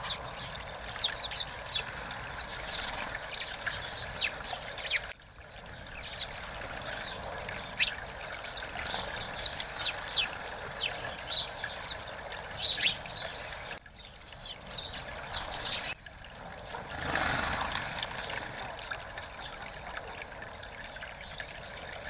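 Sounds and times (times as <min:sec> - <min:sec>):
sparrows chirping: 0:00.0 - 0:16.9
water trickling into bird bath: 0:00.0 - 0:22.0.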